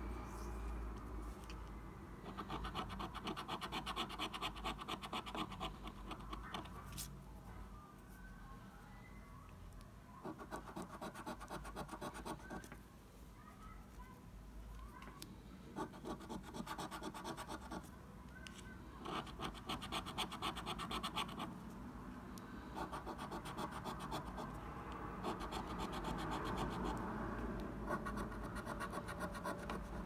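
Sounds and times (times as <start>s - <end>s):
coin scratching scratch card: 2.2s - 7.0s, 10.2s - 12.6s, 15.8s - 17.8s, 19.0s - 21.5s, 22.8s - 24.6s, 25.2s - 27.0s, 27.8s - 30.0s.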